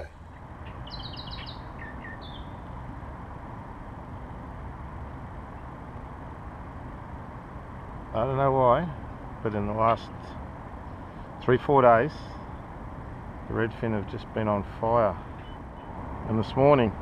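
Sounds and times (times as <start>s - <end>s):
bird chirping: 0.0s - 2.8s, 15.3s - 16.0s
steady low background noise: 0.0s - 17.0s.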